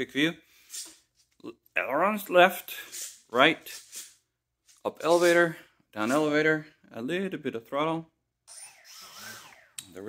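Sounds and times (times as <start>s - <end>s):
electric motor whine: 8.5s - 10.0s.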